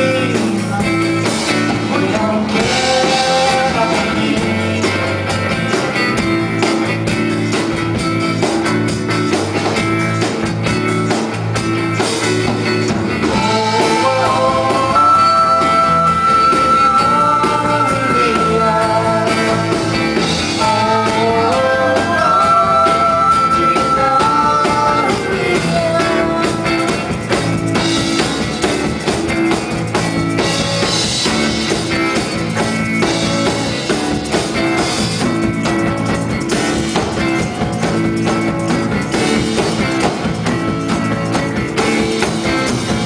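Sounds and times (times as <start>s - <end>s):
percussion: 0.0s - 43.0s.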